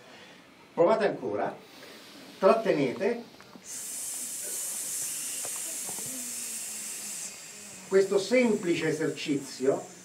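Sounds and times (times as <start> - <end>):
person hissing: 1.6 - 2.8, 3.6 - 10.0.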